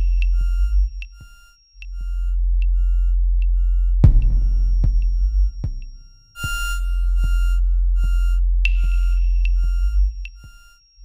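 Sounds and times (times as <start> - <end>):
deep sine-wave bass: 0.0 - 10.7
high square-wave tones: 0.3 - 10.7
clicky percussive hits: 4.0 - 6.8.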